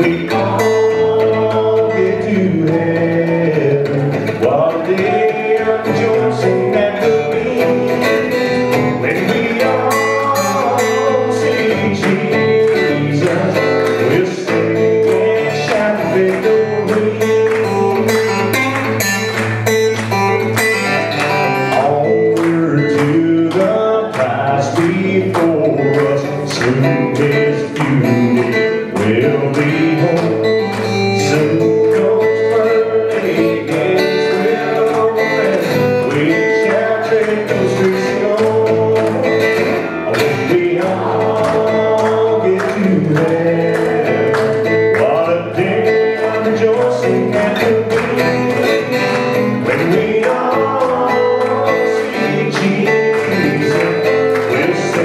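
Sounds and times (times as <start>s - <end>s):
acoustic guitar strumming: 0.0s - 55.0s
man singing: 0.0s - 55.0s.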